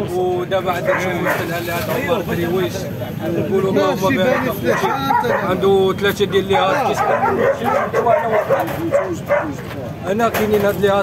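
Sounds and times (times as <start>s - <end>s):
puppies whimpering and yipping: 4.2s - 5.8s.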